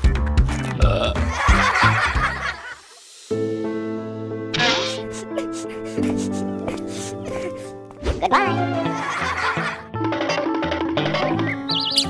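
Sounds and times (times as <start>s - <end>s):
upbeat background music: 0.0s - 12.0s
cartoon baby burp: 0.8s - 1.3s, 4.6s - 5.1s.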